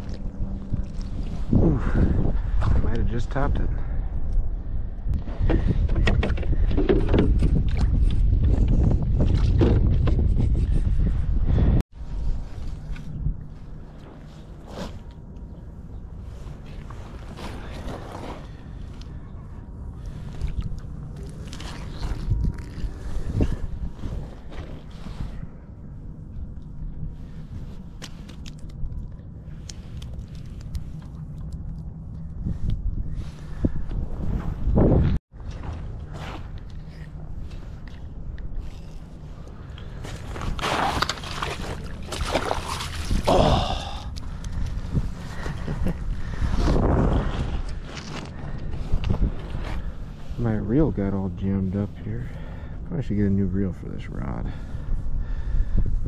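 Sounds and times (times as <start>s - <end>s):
wind buffeting microphone: 0.0s - 14.0s, 21.7s - 28.2s, 31.8s - 56.0s.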